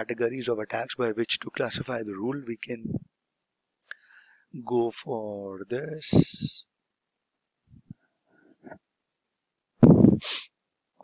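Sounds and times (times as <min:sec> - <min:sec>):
faint small noises: 0:00.0 - 0:11.0
breath into microphone: 0:03.9 - 0:04.5.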